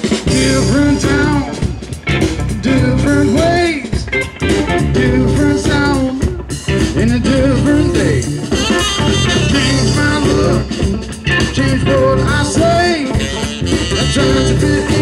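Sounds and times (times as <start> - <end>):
instrumental rock song: 0.0 - 15.0.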